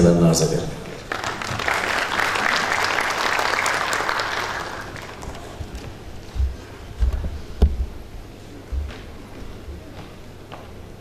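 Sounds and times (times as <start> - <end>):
audience applauding: 0.8 - 5.9.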